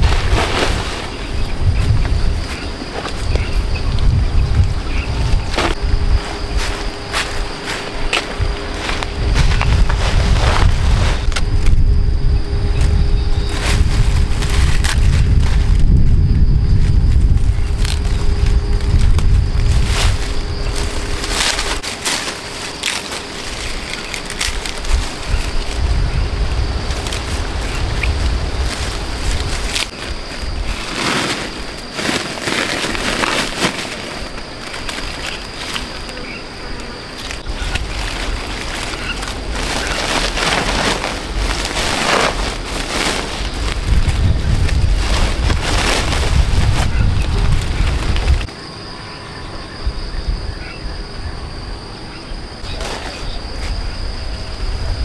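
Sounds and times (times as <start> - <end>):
wind buffeting microphone: 0.0 - 21.8, 23.7 - 31.0, 37.3 - 48.5, 52.5 - 55.0
leafy branches rustling: 0.0 - 48.5, 52.5 - 55.0.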